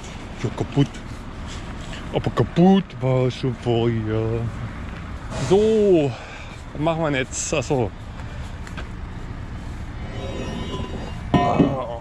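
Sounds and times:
heavy vehicle engine rumbling: 0:00.0 - 0:12.0.

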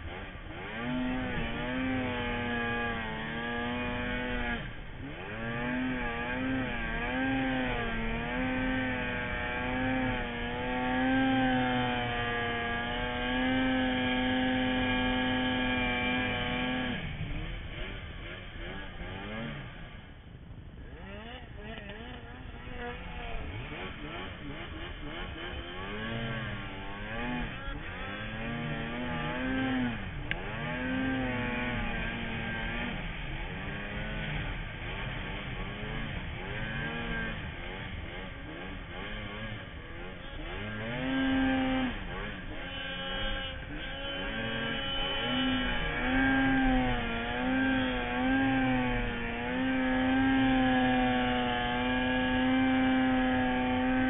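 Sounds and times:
snowmobile engine revving: 0:00.0 - 0:54.0.

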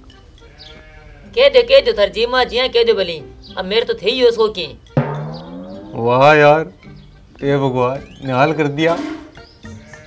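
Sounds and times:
sheep-like bleat: 0:00.5 - 0:01.4, 0:09.7 - 0:10.0.

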